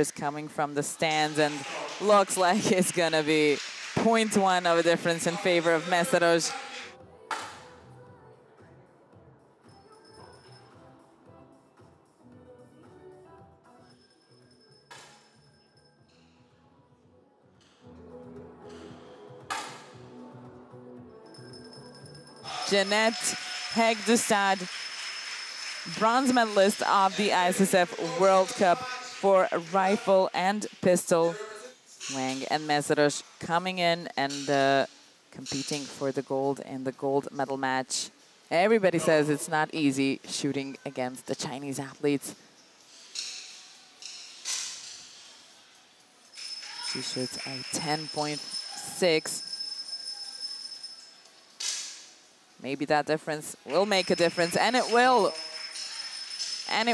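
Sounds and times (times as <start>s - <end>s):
soft background music: 4.6s - 24.7s.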